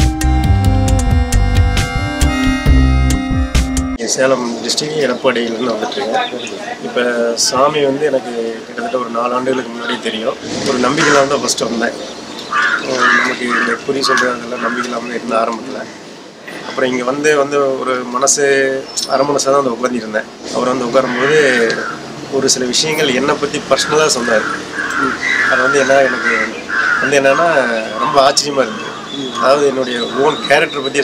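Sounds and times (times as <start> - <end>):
man talking: 4.0 - 12.1, 12.8 - 16.0, 16.7 - 31.0
crows cawing: 10.8 - 11.4, 12.4 - 15.1, 21.0 - 22.2, 23.0 - 30.9.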